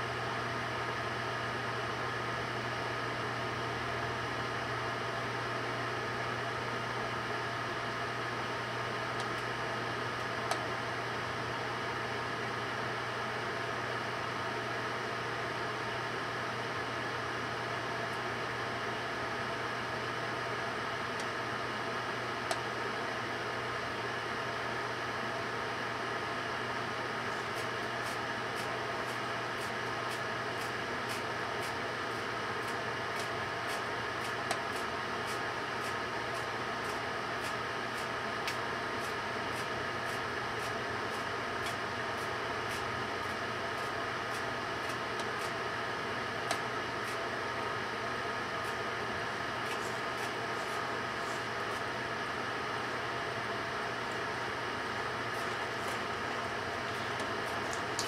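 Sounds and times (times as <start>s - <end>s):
microwave oven humming: 0.0s - 58.0s.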